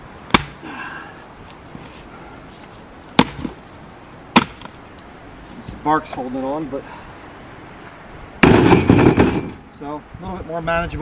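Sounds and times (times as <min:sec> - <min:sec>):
axe chopping firewood: 0:00.3 - 0:00.7, 0:03.2 - 0:03.6, 0:04.3 - 0:04.7.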